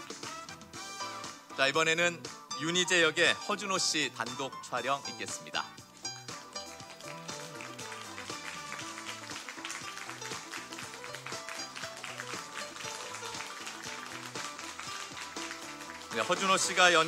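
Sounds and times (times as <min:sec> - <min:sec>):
music with steady beat: 0:00.0 - 0:17.0.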